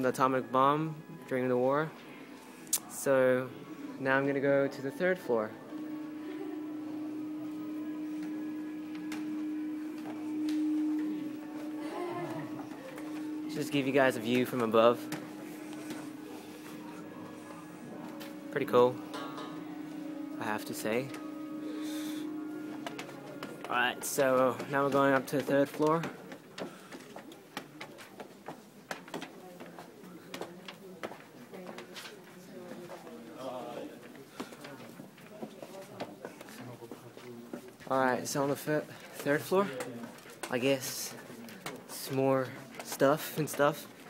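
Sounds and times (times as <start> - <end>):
low hum: 4.8 - 26.3.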